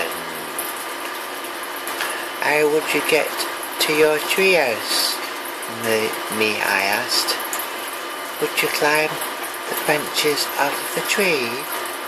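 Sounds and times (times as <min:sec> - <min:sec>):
steady hiss: 0:00.0 - 0:12.0.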